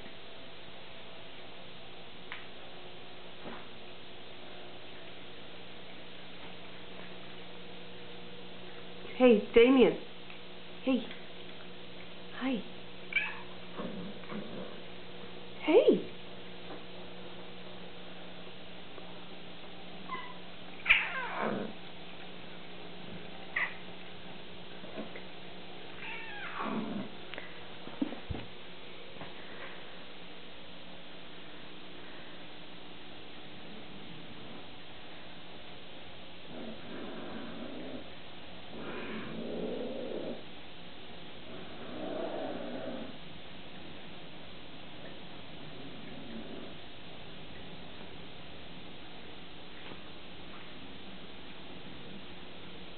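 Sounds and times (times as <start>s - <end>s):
cat yowling: 13.1s - 13.5s, 20.1s - 21.6s, 26.0s - 26.8s
cat growling: 13.1s - 14.9s, 20.1s - 21.8s, 26.0s - 27.2s, 36.5s - 40.5s, 41.4s - 43.2s, 45.6s - 46.9s.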